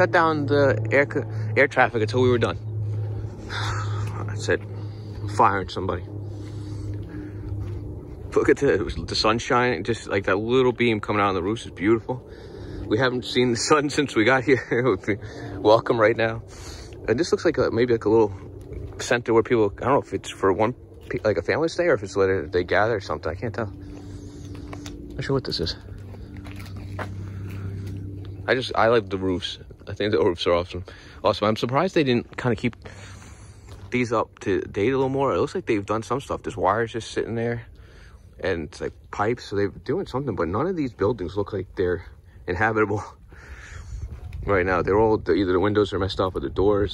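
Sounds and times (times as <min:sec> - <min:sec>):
aircraft drone overhead: 0:00.0 - 0:46.9
soft footsteps on a path: 0:00.0 - 0:46.9
steady low hum: 0:00.0 - 0:46.9.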